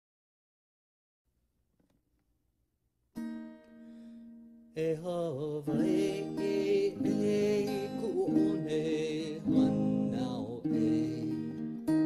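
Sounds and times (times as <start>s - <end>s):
strummed acoustic guitar chord: 3.2s - 12.0s.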